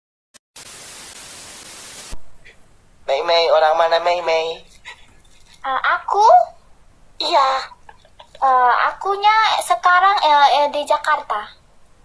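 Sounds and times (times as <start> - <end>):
static hiss: 0.6 - 12.0.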